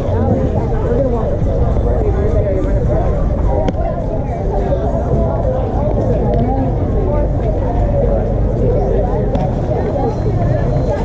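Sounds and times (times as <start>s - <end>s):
overlapping voices chattering and calling: 0.0s - 11.0s
steady low rumble: 0.0s - 11.0s.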